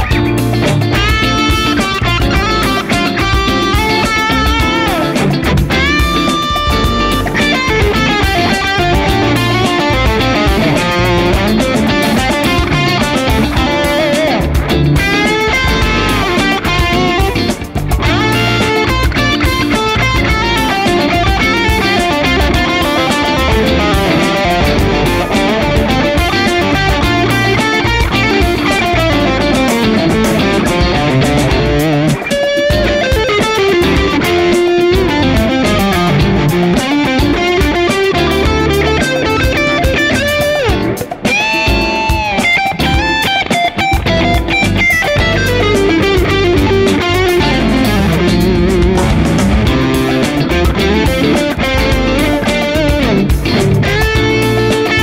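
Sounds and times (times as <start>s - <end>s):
electric guitar lead lines: 0.0s - 55.0s.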